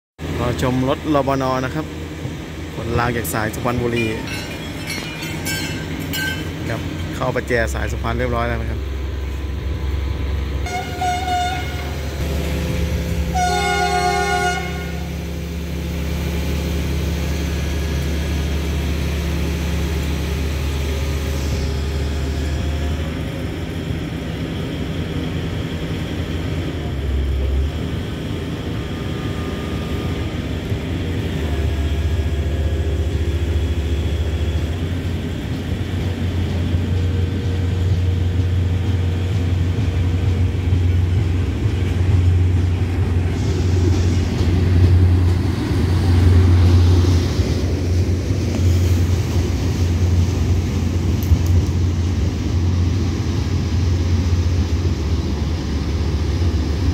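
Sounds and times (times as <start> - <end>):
vehicle engine running: 0.2 - 56.9
vehicle horn blasts: 10.6 - 12.1, 13.3 - 15.1.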